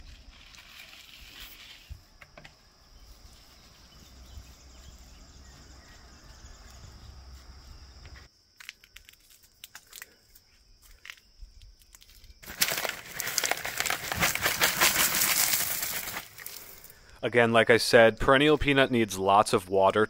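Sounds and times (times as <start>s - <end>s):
stones clicking: 11.0s - 17.2s
gravel pouring onto soil: 11.9s - 17.1s.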